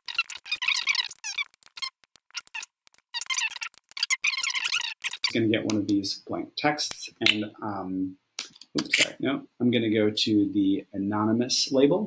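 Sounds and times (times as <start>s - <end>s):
high squeaks and clicks: 0.0s - 6.0s, 8.4s - 9.2s.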